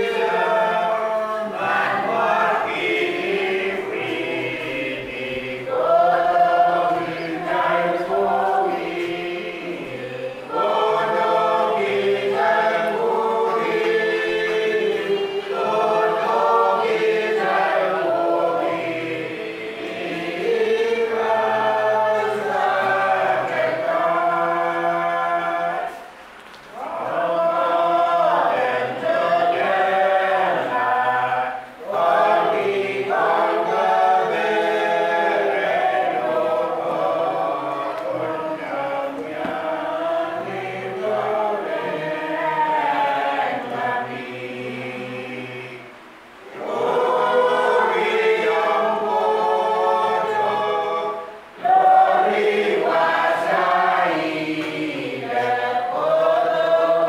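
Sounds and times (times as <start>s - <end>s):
congregation singing a hymn: 0.0s - 57.0s.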